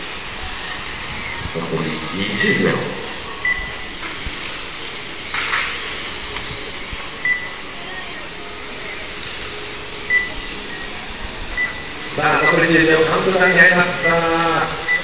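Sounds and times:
rc car motors whining: 0.0 - 15.0.

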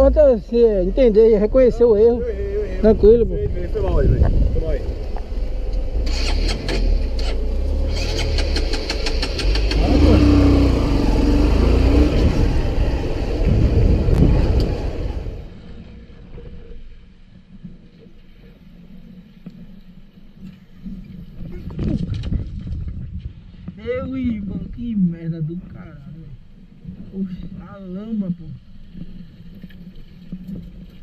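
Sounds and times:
sharp clicks: 5.1 - 9.9.

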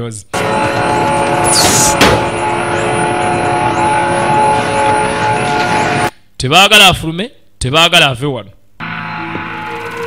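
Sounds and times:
droning sustained chord: 2.2 - 6.1.

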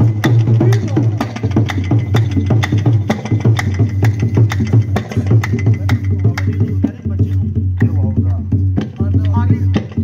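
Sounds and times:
tabla drumming: 0.0 - 10.0
hand claps: 3.5 - 6.6.

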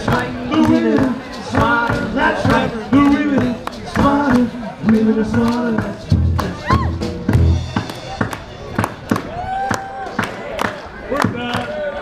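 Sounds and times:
drum kit hits: 5.8 - 8.8
rock band playing: 6.0 - 8.8
person whooping: 6.6 - 7.0.

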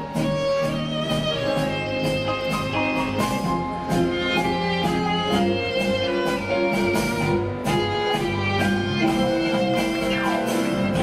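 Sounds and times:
orchestra playing tango music: 0.0 - 11.0.

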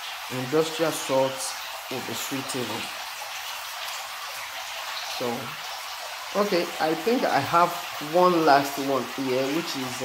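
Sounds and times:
water running into fish tank: 0.0 - 10.0.

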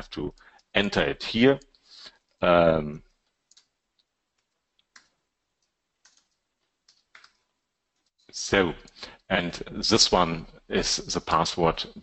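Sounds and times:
computer keyboard keystrokes: 3.5 - 3.7, 4.4 - 7.4.

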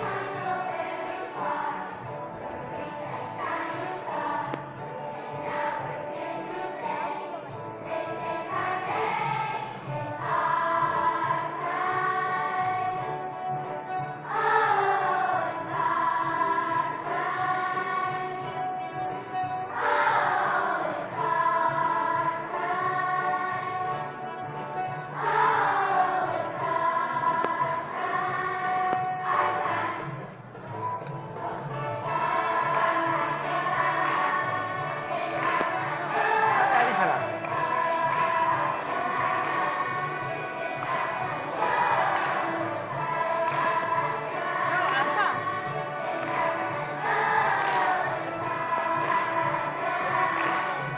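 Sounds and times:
children's choir singing: 0.0 - 50.9
rhythmic hand claps: 0.0 - 50.9.

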